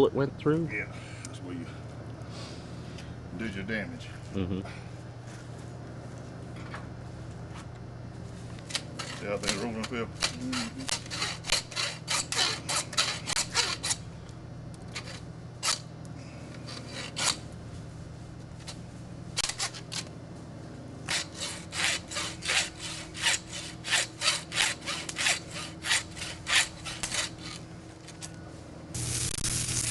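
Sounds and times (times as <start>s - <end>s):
saw rasping through carcass: 9.0s - 14.0s, 16.6s - 17.4s, 21.1s - 27.6s.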